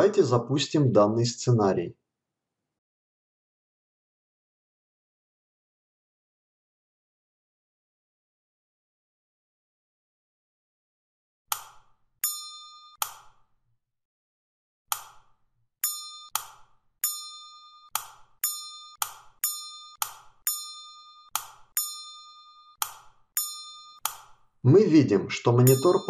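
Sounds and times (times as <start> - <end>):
bell-like electronic dings: 12.2 - 13.0, 15.8 - 22.8, 23.4 - 24.1, 25.6 - 26.0.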